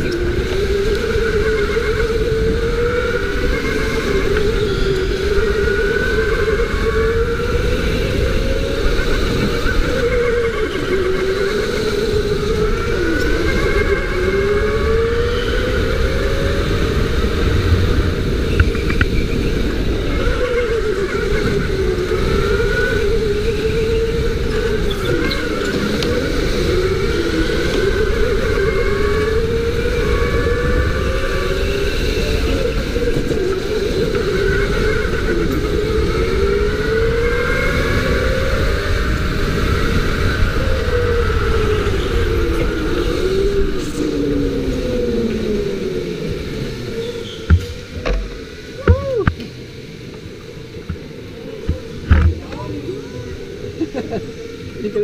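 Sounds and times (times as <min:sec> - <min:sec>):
go-kart motors running: 0:00.0 - 0:55.0.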